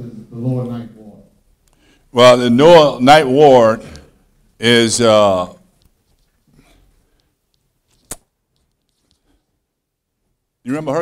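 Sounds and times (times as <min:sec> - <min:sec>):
sharp click: 0:08.0 - 0:08.3.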